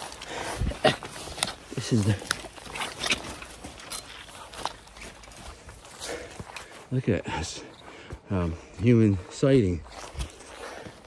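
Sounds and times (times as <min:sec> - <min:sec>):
footsteps in waders: 0:00.0 - 0:11.0.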